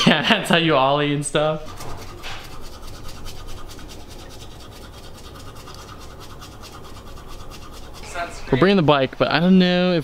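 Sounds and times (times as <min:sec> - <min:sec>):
toothbrush scrubbing teeth: 0:00.0 - 0:09.0.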